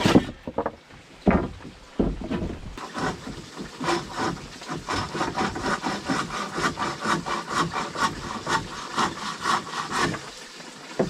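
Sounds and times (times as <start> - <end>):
hand saw cutting wood: 0.0 - 0.4, 2.8 - 10.4.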